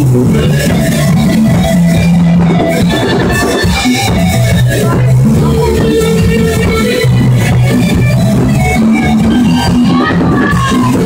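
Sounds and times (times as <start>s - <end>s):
drum kit beat: 0.0s - 11.0s
electric guitars: 0.0s - 11.0s.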